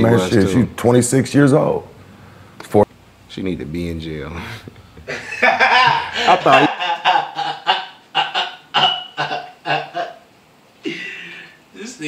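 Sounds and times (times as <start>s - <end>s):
man laughing hard: 5.1s - 10.2s.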